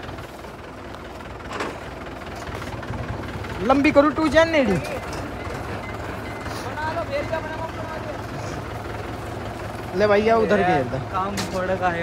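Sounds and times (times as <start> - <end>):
tractor diesel engine idling: 0.0 - 12.0.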